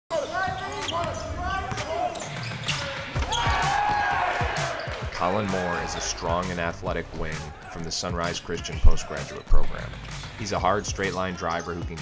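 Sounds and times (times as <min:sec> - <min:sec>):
sneakers squeaking on hardwood: 0:00.1 - 0:05.2.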